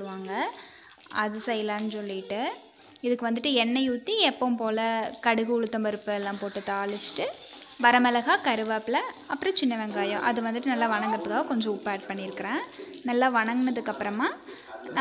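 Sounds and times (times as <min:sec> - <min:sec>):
shallots sizzling in hot oil: 0:00.0 - 0:15.0.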